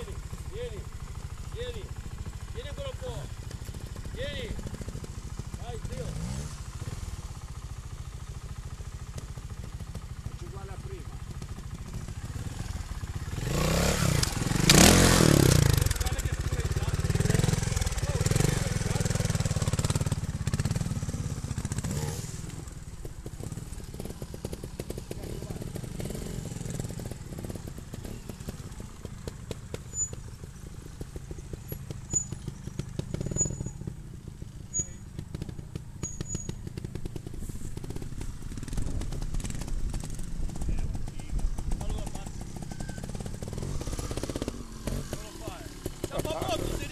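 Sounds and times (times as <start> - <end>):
motorcycle engine idling and revving: 0.0 - 46.9.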